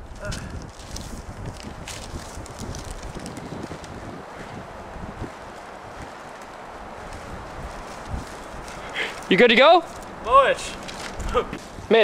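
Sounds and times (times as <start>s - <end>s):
wind on microphone: 0.0s - 9.3s, 9.9s - 12.0s.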